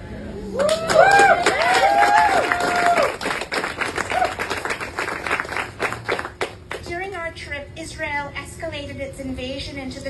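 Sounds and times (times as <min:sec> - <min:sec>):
small crowd clapping: 0:00.6 - 0:06.9.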